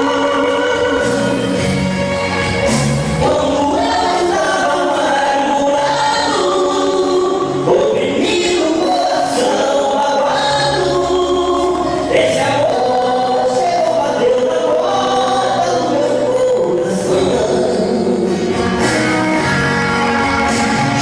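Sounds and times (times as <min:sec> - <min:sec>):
two men singing gospel: 0:00.0 - 0:19.0
instrumental accompaniment: 0:00.0 - 0:21.0.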